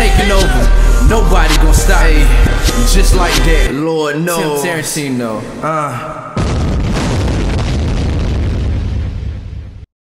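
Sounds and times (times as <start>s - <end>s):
explosion-like boom: 6.4s - 9.9s.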